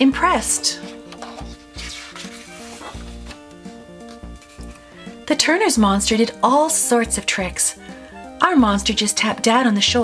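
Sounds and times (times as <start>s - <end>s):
soft background music: 0.0s - 10.0s
book page rustling: 0.6s - 5.0s.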